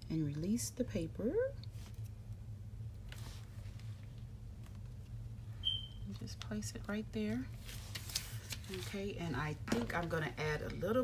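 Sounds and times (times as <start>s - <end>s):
steady low hum: 0.0s - 11.0s
short high-pitched beep: 5.6s - 6.0s.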